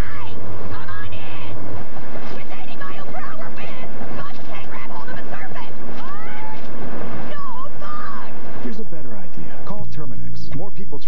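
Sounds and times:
continuous rattling rumble: 0.0 - 11.0
woman shrieking: 6.0 - 6.6.

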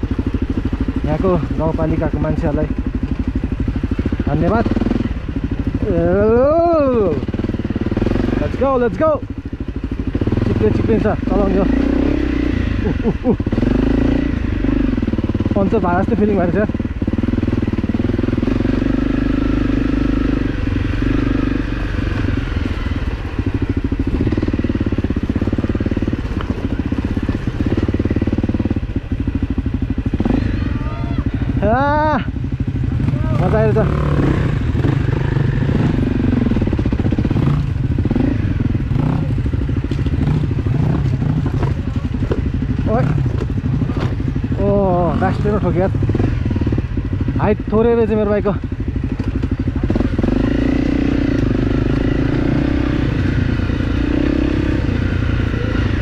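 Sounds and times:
dirt bike engine running: 0.0 - 56.0.

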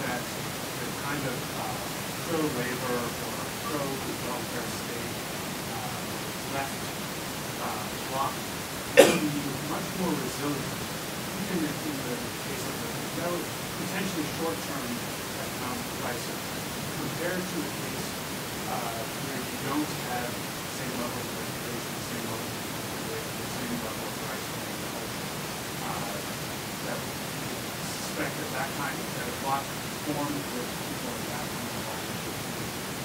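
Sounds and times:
distant man speaking: 0.0 - 7.0, 7.6 - 8.4, 9.0 - 18.1, 18.7 - 27.1, 27.8 - 32.2
steady hiss: 0.0 - 33.0.

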